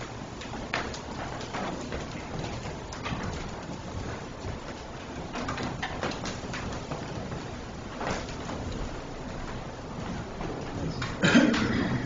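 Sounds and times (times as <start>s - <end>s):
footsteps on wooden floor: 0.0s - 11.8s
soft knocks and rustles: 0.0s - 12.0s.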